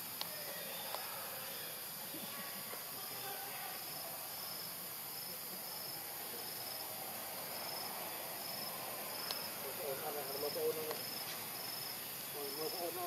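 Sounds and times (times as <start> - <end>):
insect chirp: 0.0 - 13.0
insects hissing: 0.0 - 13.0.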